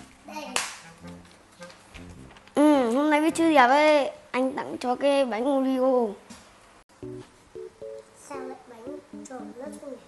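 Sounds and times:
sharp smack: 0.5 - 0.9.

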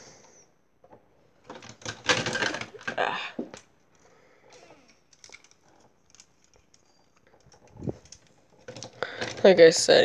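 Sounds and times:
plastic toy parts clicking: 1.4 - 3.7, 4.5 - 10.0.

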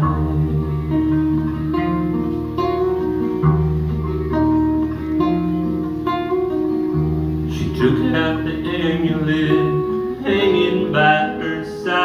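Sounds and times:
acoustic guitars picking: 0.0 - 12.0
low bass notes: 0.0 - 12.0
person singing: 7.5 - 12.0.

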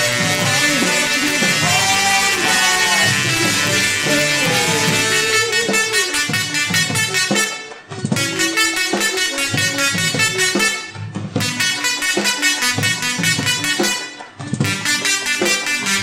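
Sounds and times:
tesla coil playing buzzy melody: 0.0 - 16.0.

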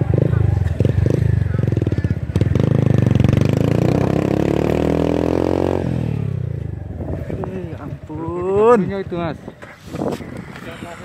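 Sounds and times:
motorcycle engine running hard: 0.0 - 8.3.

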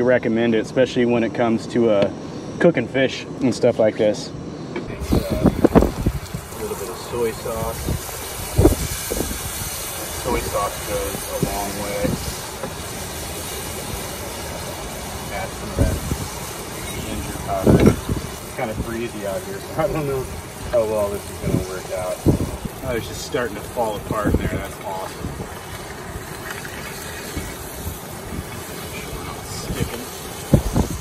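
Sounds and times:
stove burner hiss: 0.0 - 31.0
wind buffeting microphone: 4.9 - 31.0
fish sizzling in a skillet: 5.0 - 31.0.

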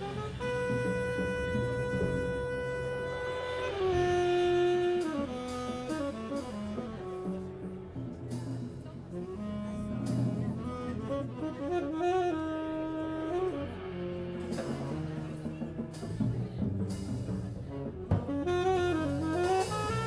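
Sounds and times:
saxophone melody: 0.0 - 20.0
upright double bass: 0.0 - 20.0.

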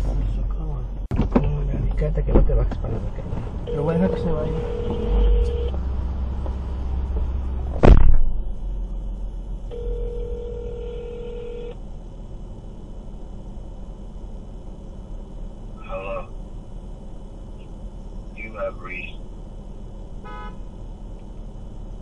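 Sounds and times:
low rumble: 0.0 - 9.8
telephone ringing tone: 3.7 - 5.8, 9.7 - 11.8
loud thump: 7.7 - 8.5.

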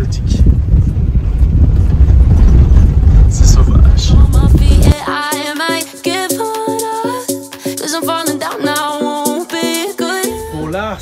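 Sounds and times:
car engine and tyres rumbling: 0.0 - 4.7.

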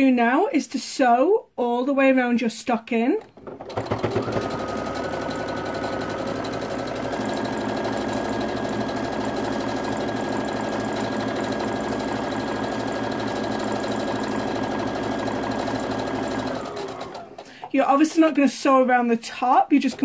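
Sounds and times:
electric sewing machine running: 3.2 - 18.5, 19.7 - 20.0.

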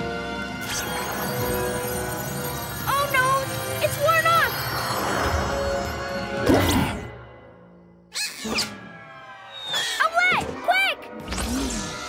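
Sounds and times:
cartoon soundtrack music: 0.0 - 12.0.

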